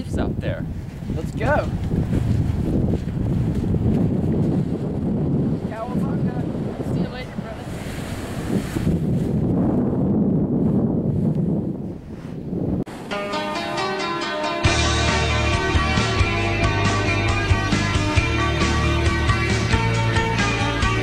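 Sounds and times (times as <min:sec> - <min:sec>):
wind buffeting microphone: 0:00.0 - 0:13.8
ocean surf: 0:04.5 - 0:09.4, 0:12.9 - 0:21.0.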